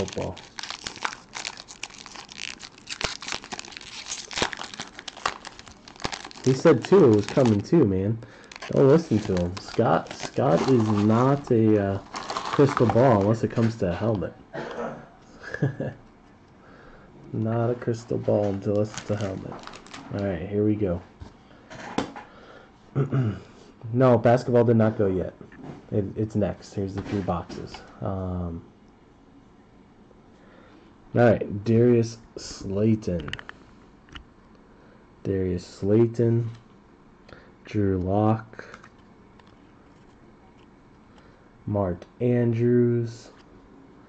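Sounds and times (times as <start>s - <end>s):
foil wrapper tearing and crinkling: 0.0s - 13.8s, 18.7s - 20.2s.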